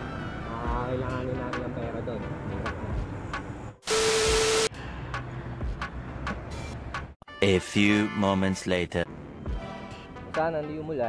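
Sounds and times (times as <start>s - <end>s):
static hiss burst: 3.8s - 4.7s.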